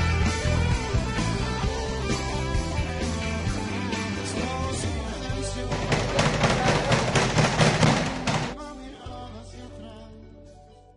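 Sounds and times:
speed bag punched rhythmically: 5.8 - 8.6.

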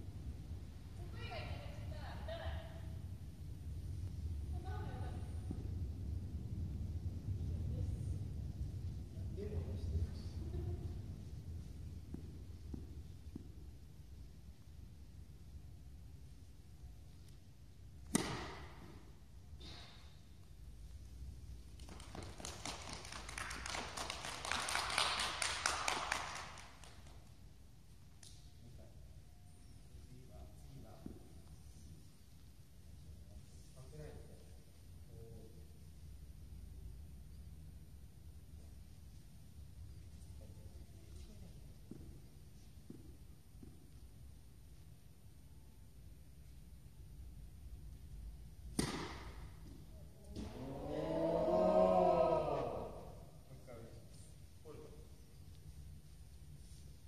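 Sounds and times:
tennis racket hitting ball echoing: 18.0 - 19.1, 48.7 - 49.7
children clapping: 21.8 - 27.2
voices: 50.2 - 53.3.

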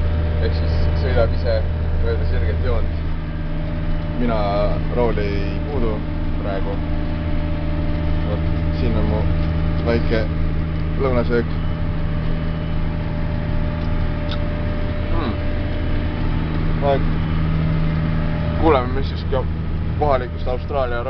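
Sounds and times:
tractor engine drone: 0.0 - 21.0
people talking: 0.4 - 3.0, 4.2 - 6.8, 8.2 - 10.4, 11.0 - 11.6, 15.1 - 15.4, 16.8 - 17.1, 18.6 - 21.0.

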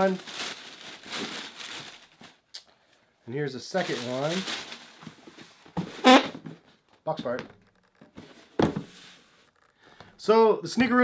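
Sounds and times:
tissue paper rustling and crinkling: 0.0 - 2.5, 3.7 - 5.8.

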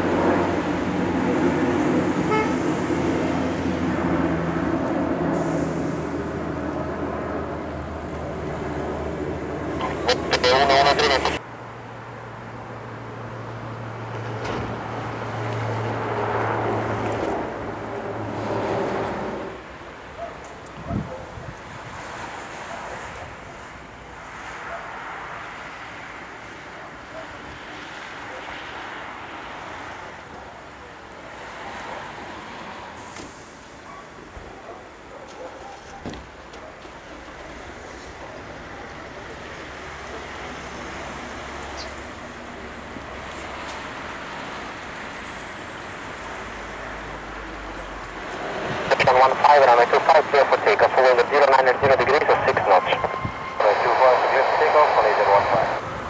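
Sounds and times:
distant jet engines rushing: 0.0 - 11.4, 12.6 - 56.0
wind buffeting microphone: 20.7 - 22.0.

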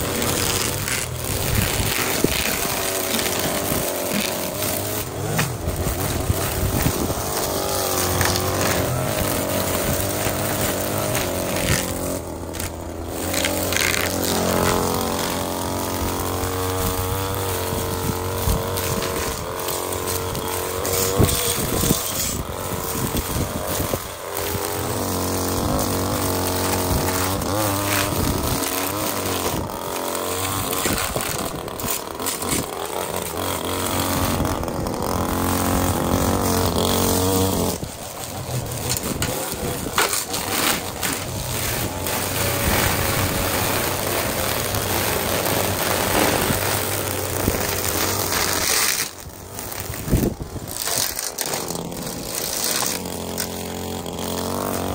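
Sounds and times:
string trimmer engine running: 0.0 - 54.9.

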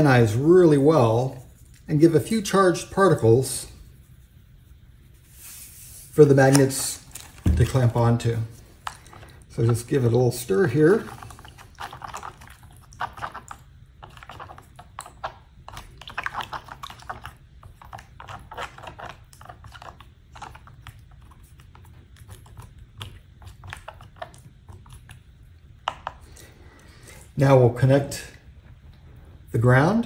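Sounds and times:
faint low hum: 0.0 - 30.0.

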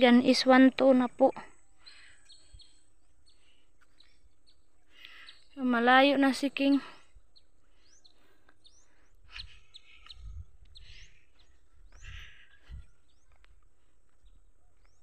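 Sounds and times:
birds chirping faintly: 0.0 - 15.0.

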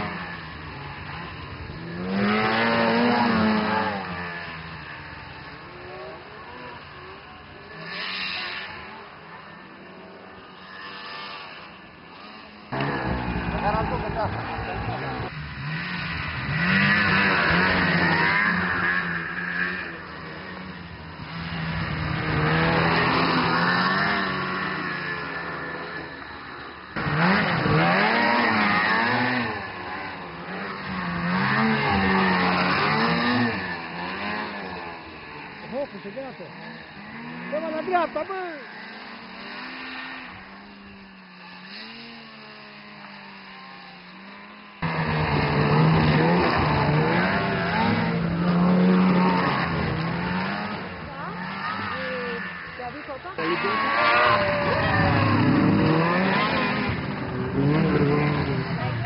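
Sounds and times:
snowmobile engines revving: 0.0 - 59.0.

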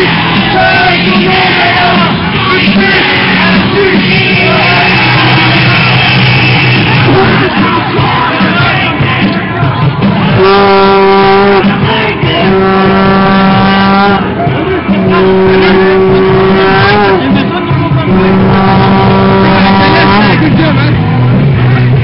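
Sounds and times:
crowd voices: 0.0 - 22.0
vehicle horn blasts: 10.4 - 14.2, 15.1 - 17.3, 18.1 - 20.4.

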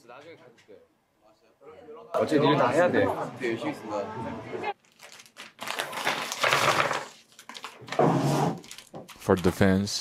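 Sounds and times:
plastic wrappers crinkling: 4.8 - 8.0, 8.6 - 9.7.

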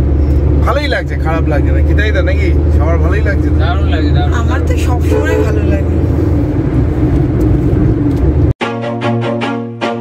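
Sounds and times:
car engine and tyre rumble: 0.0 - 8.6
background music: 8.6 - 10.0.

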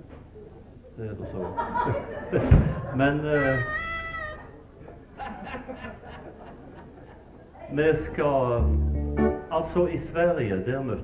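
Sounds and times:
man talking: 7.8 - 8.8, 9.5 - 11.0.

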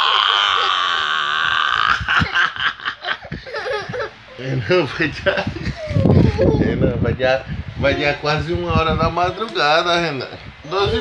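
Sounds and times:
man and toddler laughing: 0.0 - 6.8.

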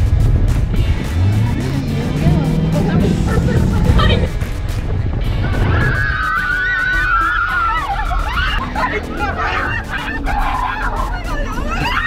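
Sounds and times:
music with steady beat: 0.0 - 11.9
people laughing: 2.8 - 4.4, 5.6 - 12.0
passengers screaming: 5.4 - 12.0.

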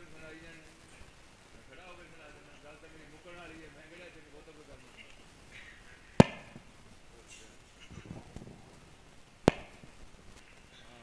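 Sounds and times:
sharp loud cracks: 6.1 - 6.8, 9.4 - 10.1.

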